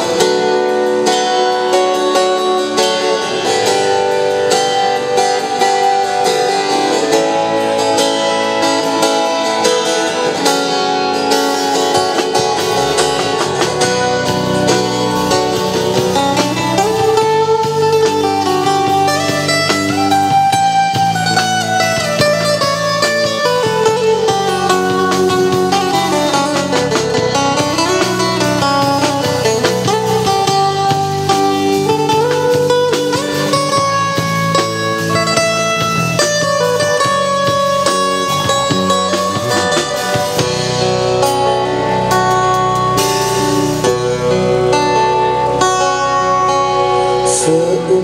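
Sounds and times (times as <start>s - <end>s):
amplified acoustic guitar melody: 0.0s - 48.0s
drum kit: 0.0s - 48.0s
electric bass: 0.0s - 48.0s.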